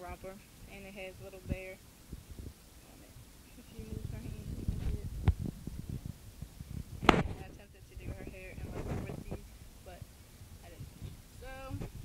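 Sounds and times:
microphone handling thumps: 1.2 - 12.0.

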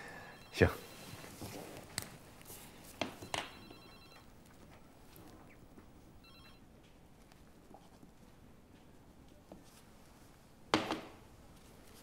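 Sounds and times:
telephone bell ringing: 0.0 - 1.5, 3.2 - 4.3, 6.2 - 6.6.

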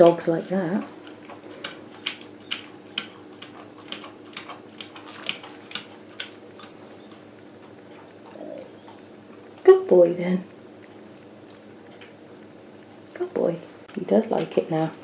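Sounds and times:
dog licking wet clicks: 0.0 - 14.8
faint steady hum: 0.0 - 15.0.

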